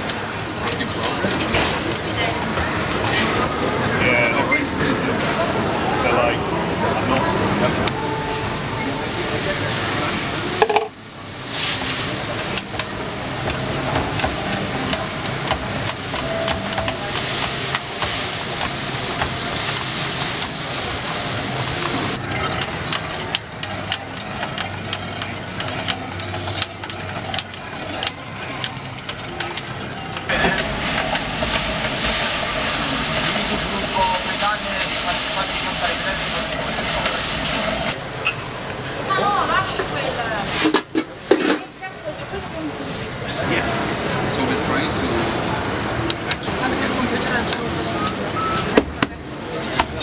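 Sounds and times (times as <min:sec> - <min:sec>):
indistinct voices: 0:00.0 - 0:50.0
steady machine hum: 0:12.3 - 0:38.0
kitchen clicks and clatter: 0:12.5 - 0:30.3.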